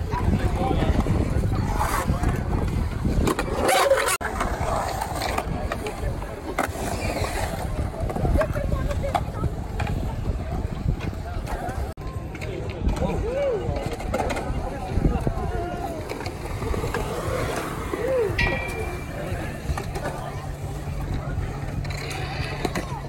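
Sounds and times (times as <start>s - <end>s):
crowd chatter: 0.0s - 23.0s
skateboard wheels rolling on concrete: 0.0s - 23.0s
skateboard clacks: 0.1s - 23.0s.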